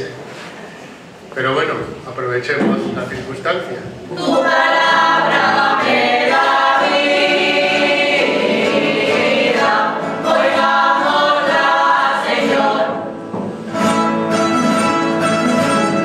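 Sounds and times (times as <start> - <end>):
choir singing a hymn: 4.1 - 13.8.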